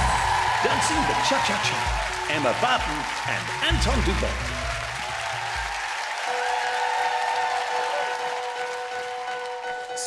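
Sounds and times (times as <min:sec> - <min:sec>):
studio audience applauding: 0:00.0 - 0:10.0.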